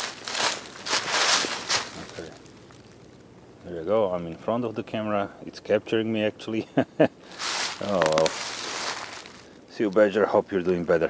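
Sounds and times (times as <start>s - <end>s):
footsteps crunching dry leaves: 0.0s - 3.2s, 7.2s - 11.0s.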